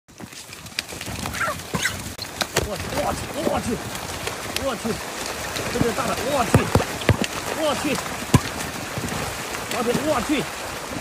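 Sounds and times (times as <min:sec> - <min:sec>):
chicken squawking: 0:01.3 - 0:02.0
sharp knocks: 0:05.8 - 0:07.4, 0:08.2 - 0:08.6.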